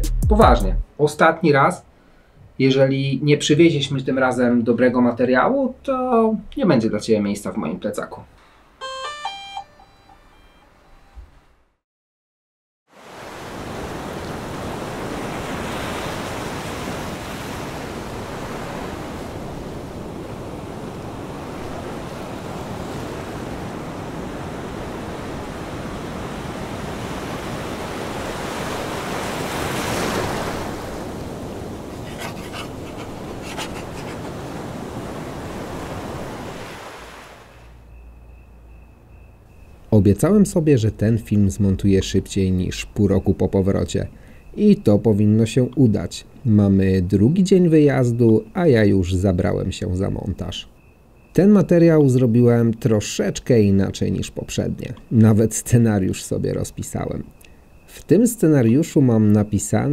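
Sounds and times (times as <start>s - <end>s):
ocean surf washing: 12.9s - 37.8s.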